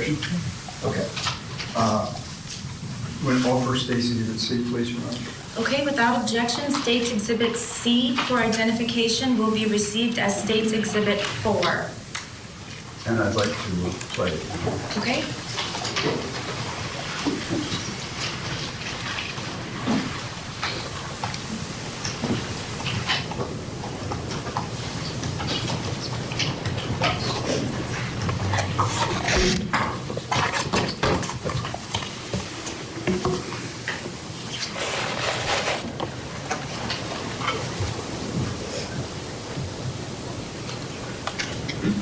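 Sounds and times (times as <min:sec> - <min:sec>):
hissy muffled phone line: 0:00.0 - 0:30.5.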